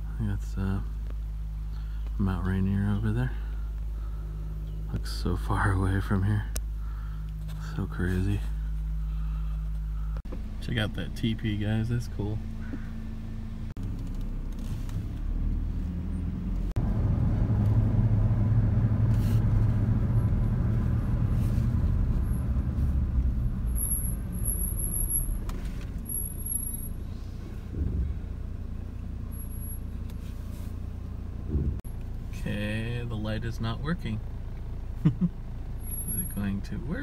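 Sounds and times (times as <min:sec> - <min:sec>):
truck engine and tyre rumble: 0:00.0 - 0:37.0.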